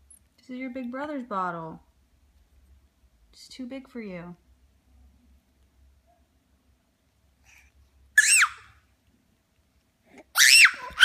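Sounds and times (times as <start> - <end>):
baby squealing cry: 8.2 - 8.8, 10.3 - 11.0.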